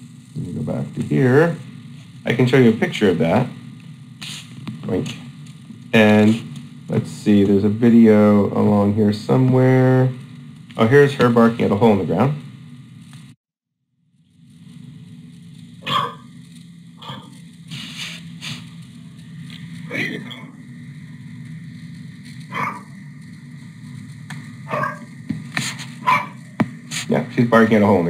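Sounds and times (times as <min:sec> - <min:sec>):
steady low background noise: 0:00.0 - 0:13.4, 0:14.2 - 0:28.0
dog barking: 0:15.8 - 0:16.3, 0:17.0 - 0:17.4, 0:22.5 - 0:22.9, 0:24.6 - 0:25.1, 0:26.0 - 0:26.4.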